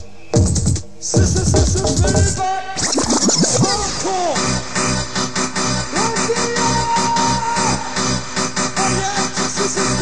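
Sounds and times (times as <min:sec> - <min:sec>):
rave track: 0:00.0 - 0:10.0
vinyl record scratching: 0:00.5 - 0:04.6.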